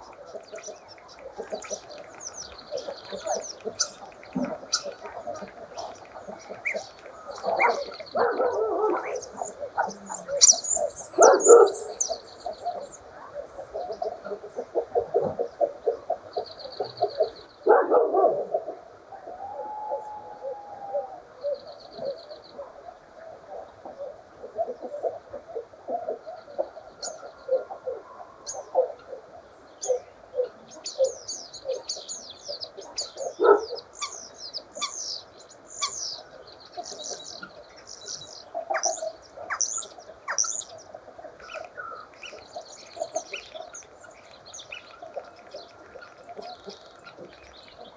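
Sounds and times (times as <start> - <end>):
starling singing: 0.4 - 12.2, 36.8 - 40.8.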